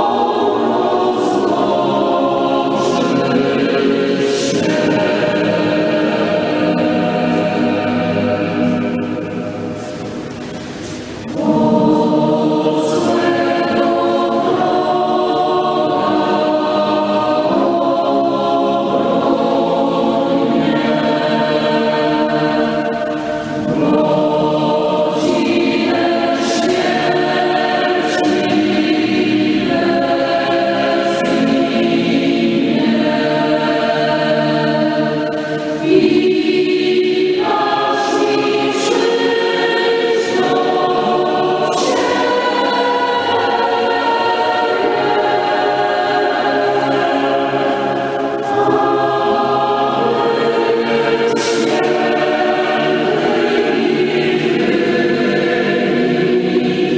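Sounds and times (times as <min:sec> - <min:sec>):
choir singing sacred music: 0:00.0 - 0:56.9.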